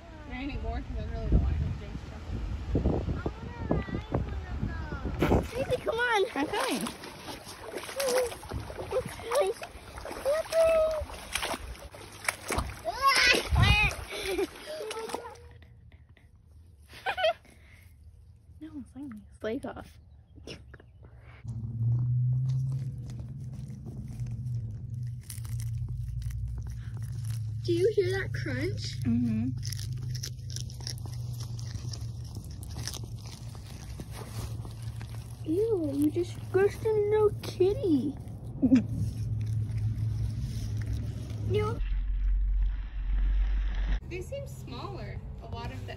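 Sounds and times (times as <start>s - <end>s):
water splashing in creek: 5.2s - 15.5s, 21.5s - 29.0s, 29.6s - 43.3s
steady low hum: 21.3s - 45.9s
cat chewing crunchy food: 22.4s - 36.8s, 38.1s - 41.5s.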